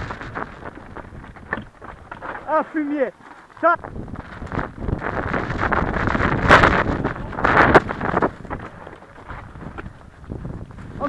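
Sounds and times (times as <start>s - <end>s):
wind on microphone: 0.0s - 2.5s, 3.6s - 11.0s
bike rattling: 0.0s - 11.0s
tyres crunching over stones: 0.0s - 11.0s.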